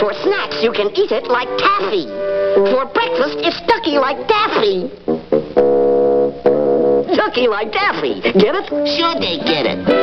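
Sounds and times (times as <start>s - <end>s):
cartoon music notes and chords: 0.0s - 7.6s, 8.3s - 10.0s.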